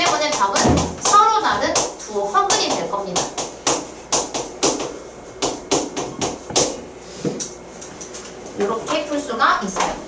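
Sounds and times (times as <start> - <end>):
chalk tapping on chalkboard: 0.0 - 7.4.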